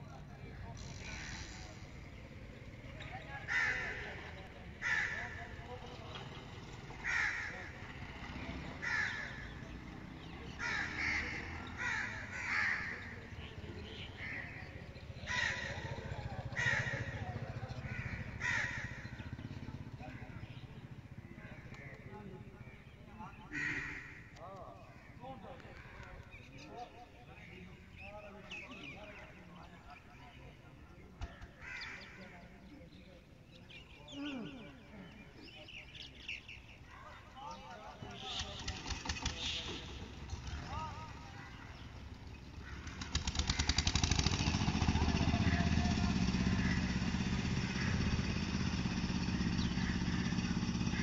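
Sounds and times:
crows cawing: 0.9s - 2.2s, 2.8s - 20.6s, 21.2s - 26.6s, 31.2s - 33.0s, 40.3s - 51.0s
harsh rasping call: 3.4s - 5.6s, 7.0s - 13.4s.

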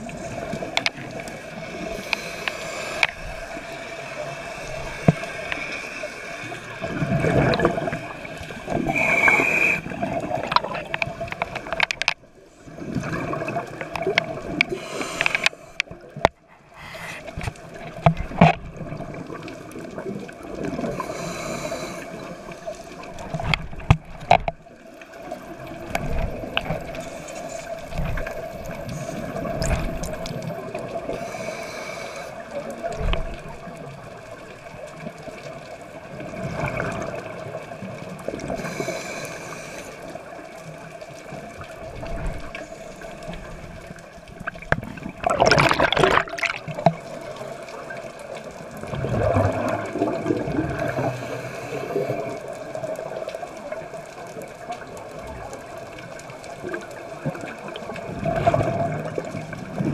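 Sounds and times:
steady underwater hum: 0.0s - 59.9s
air bubbles gurgling underwater: 4.2s - 11.9s, 12.6s - 16.4s, 17.3s - 31.5s, 32.5s - 39.2s, 40.1s - 59.9s.

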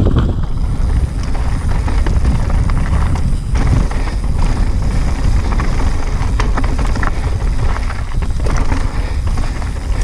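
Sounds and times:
bike tyres rumbling over dirt: 0.0s - 10.0s
stones and bike parts clacking: 0.0s - 10.0s.

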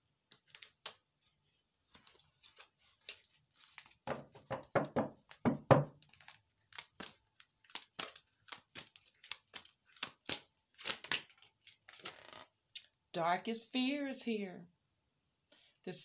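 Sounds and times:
cards being shuffled: 0.3s - 12.5s.

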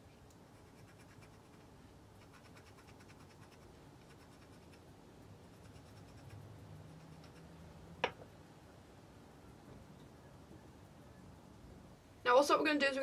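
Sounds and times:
brush bristles scratching skin: 0.5s - 4.8s, 5.5s - 6.4s.

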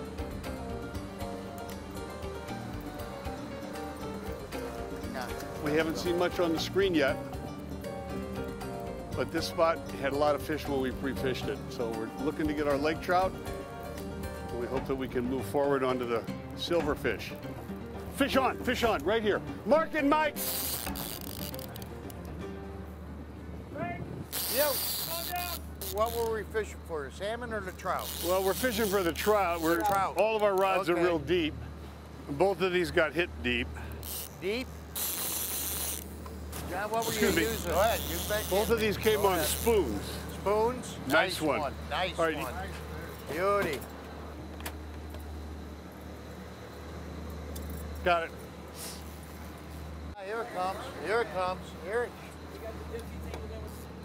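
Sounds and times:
faint background music: 0.0s - 31.5s, 36.7s - 43.8s
boat engine droning: 0.0s - 54.0s
fishing gear clicking and jingling: 20.4s - 22.2s.

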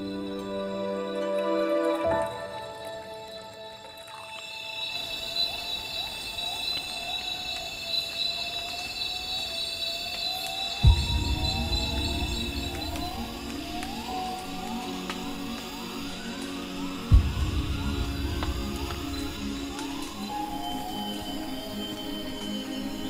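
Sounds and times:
background music: 0.0s - 5.2s, 10.8s - 23.0s
insect trills: 0.0s - 23.0s
low thump: 10.8s - 14.0s, 17.1s - 20.0s.

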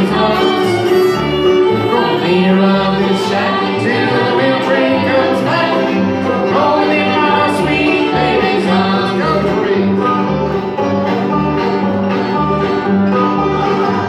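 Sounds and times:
person singing: 0.0s - 10.8s
bluegrass string band playing: 0.0s - 14.0s.

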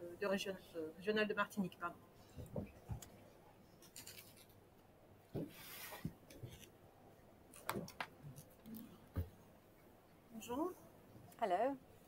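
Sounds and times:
clothing rubbing on microphone: 5.4s - 6.7s.

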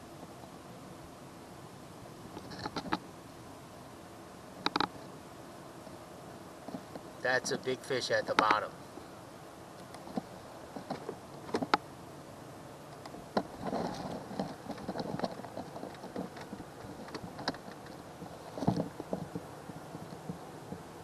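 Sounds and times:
clicks and knocks of gear handling: 13.0s - 20.9s.

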